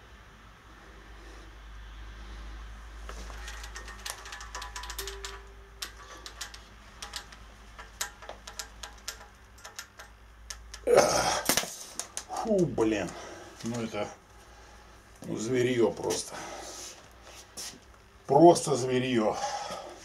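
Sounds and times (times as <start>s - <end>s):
coil spring clicking: 3.2s - 12.3s.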